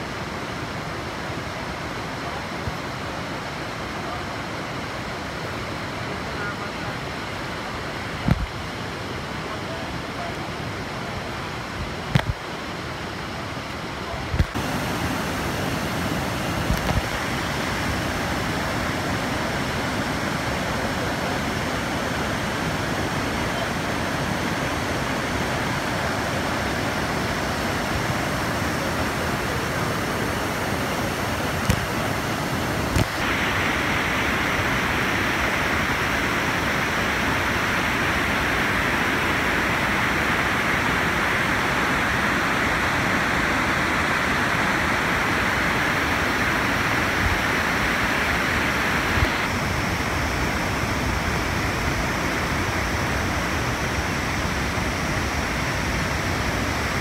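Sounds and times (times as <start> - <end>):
waterfall rushing: 0.0 - 57.0.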